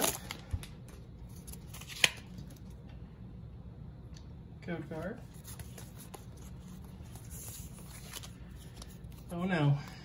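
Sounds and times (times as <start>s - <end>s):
cards rustling: 0.0s - 2.8s, 5.0s - 9.6s.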